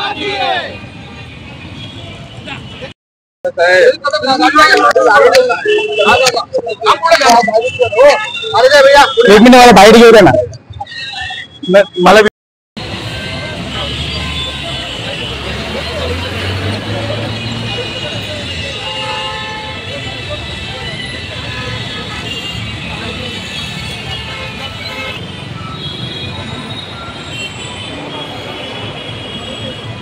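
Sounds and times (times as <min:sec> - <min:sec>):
vehicle horns: 0:00.0 - 0:03.0, 0:05.4 - 0:06.5, 0:10.8 - 0:30.0
traffic: 0:00.0 - 0:30.0
men talking and calling out: 0:02.4 - 0:12.3, 0:13.8 - 0:21.1.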